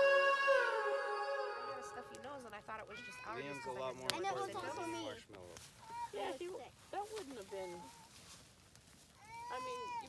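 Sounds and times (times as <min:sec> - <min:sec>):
child singing high note: 0:00.0 - 0:02.2.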